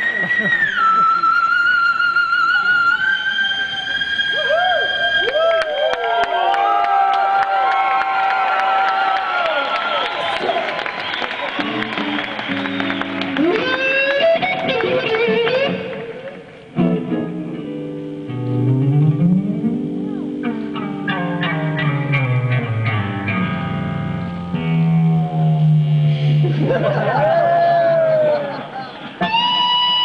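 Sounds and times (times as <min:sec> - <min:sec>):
electric guitar solo: 0:00.0 - 0:06.8, 0:11.5 - 0:30.0.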